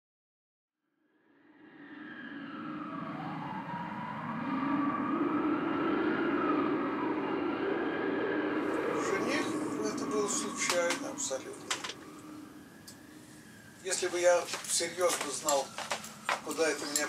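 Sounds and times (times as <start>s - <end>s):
howling wind: 1.2s - 17.0s.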